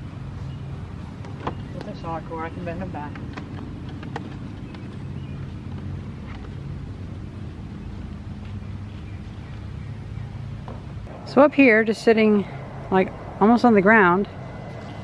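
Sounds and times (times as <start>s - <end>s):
steady low rumble: 0.0s - 15.0s.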